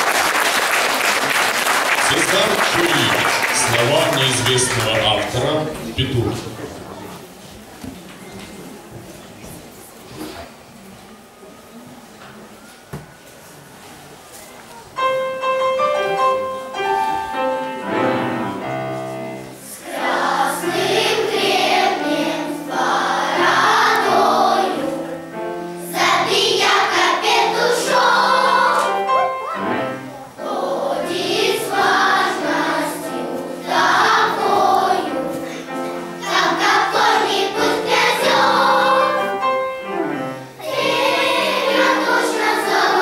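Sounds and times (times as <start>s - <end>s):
children's choir singing: 11.2s - 43.0s
piano accompaniment: 14.8s - 43.0s.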